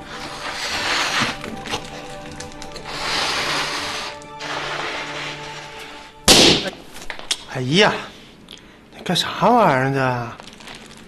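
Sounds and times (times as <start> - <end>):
air blown into balloon: 0.0 - 6.2
balloon bursting pop: 6.3 - 6.8.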